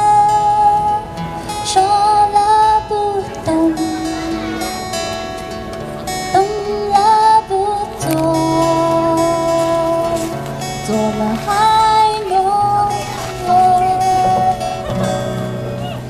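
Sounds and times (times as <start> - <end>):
woman singing a slow ballad: 0.0 - 4.7, 6.2 - 14.8
acoustic guitars strummed and picked: 0.0 - 16.0.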